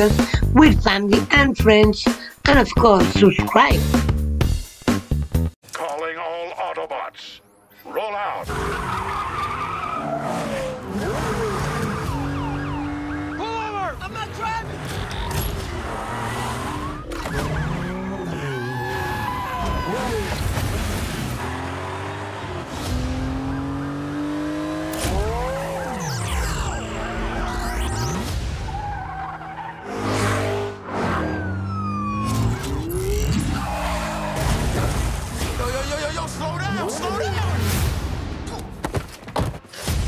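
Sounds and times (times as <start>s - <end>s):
car sounds: 5.7s - 39.7s
wail falling in pitch: 17.6s - 20.4s
car engine running hard: 21.0s - 27.6s
trailer music score: 21.2s - 36.5s
man yelling: 35.8s - 37.6s.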